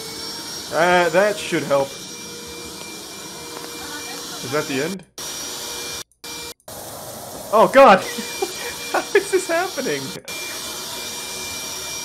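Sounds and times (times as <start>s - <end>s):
water spraying from broken pipe: 6.7s - 10.0s.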